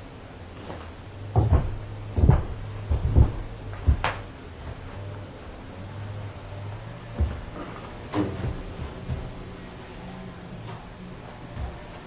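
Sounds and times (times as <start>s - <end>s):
dull knocks and thumps: 0.7s - 5.1s, 7.0s - 9.9s.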